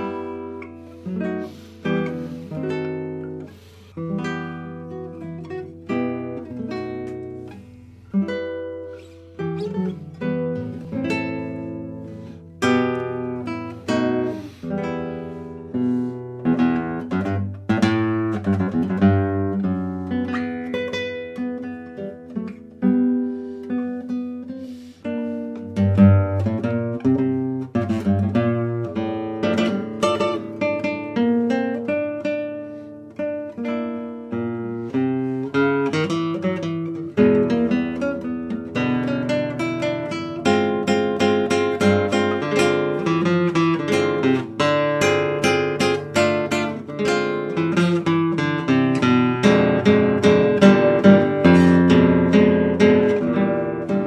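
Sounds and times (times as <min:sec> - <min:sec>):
solo classical guitar: 0:00.0 - 0:54.0.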